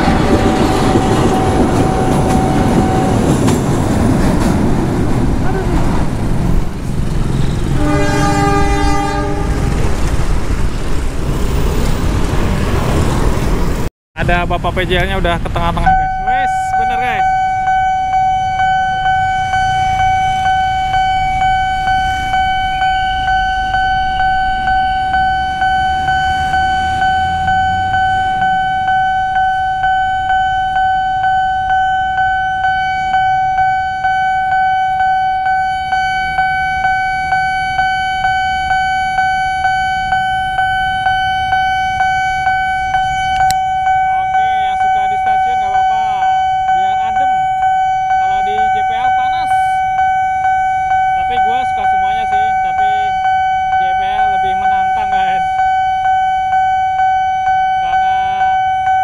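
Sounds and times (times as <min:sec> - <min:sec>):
level-crossing warning bell ringing: 0:00.0 - 0:05.6, 0:07.0 - 0:09.7, 0:15.7 - 0:59.0
road traffic rumbling: 0:00.0 - 0:59.0.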